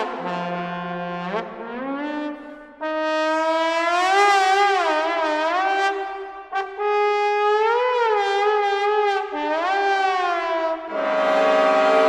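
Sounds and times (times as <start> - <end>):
trombones sliding glissando: 10.9 - 12.0.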